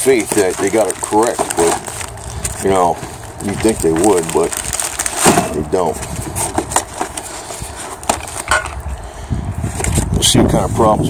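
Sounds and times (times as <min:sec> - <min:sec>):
packing paper rustling: 0:00.0 - 0:09.0
low rumble: 0:00.5 - 0:09.7.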